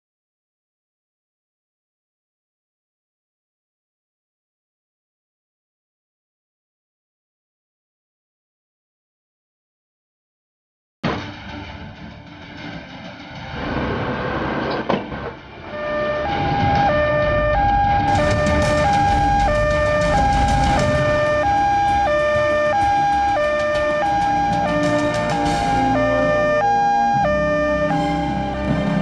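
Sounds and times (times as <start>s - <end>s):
low vehicle rumble: 15.4s - 29.0s
two-tone siren: 15.6s - 29.0s.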